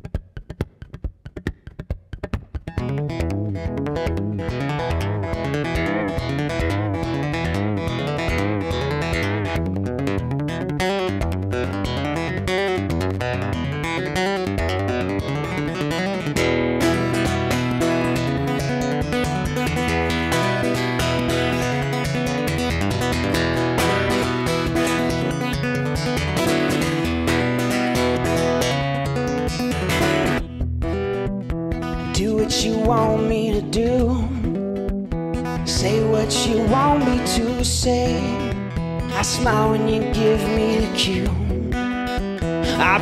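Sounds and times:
acoustic guitar playing: 0.0 - 43.0.

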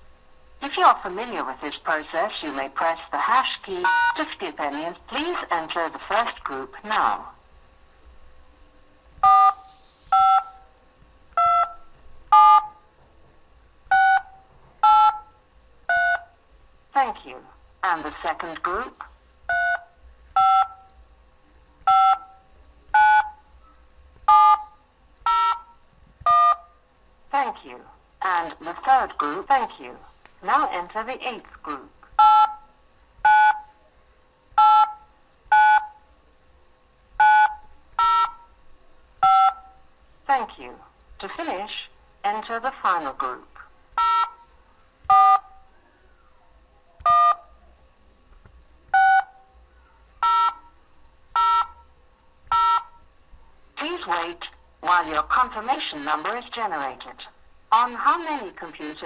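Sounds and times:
touch-tone keypad beeps: 11.4 - 11.8, 13.9 - 15.3, 19.5 - 20.9, 21.9 - 22.4, 23.0 - 23.4, 24.3 - 25.7, 26.3 - 26.7, 32.2 - 32.7, 33.3 - 33.7, 34.6 - 36.0, 37.2 - 38.5, 39.2 - 39.8, 44.0 - 44.4, 47.0 - 47.5, 50.2 - 50.7, 51.4 - 51.8, 52.5 - 53.0.

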